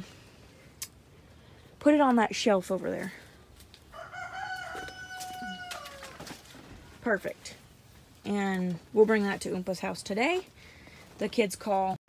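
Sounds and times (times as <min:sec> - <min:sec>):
rooster crowing: 0:03.9 - 0:06.4.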